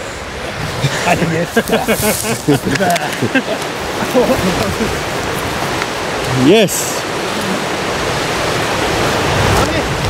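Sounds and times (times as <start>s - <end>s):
river rapids rushing: 0.0s - 10.0s.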